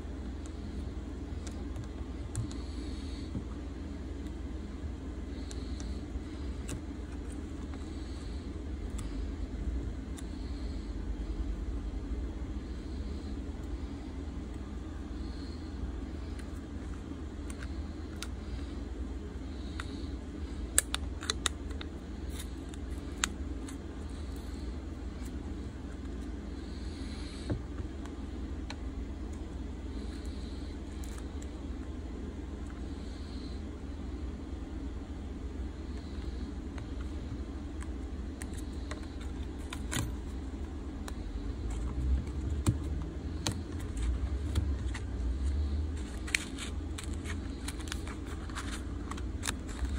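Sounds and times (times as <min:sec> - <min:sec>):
low background rumble: 0:00.0 - 0:49.9.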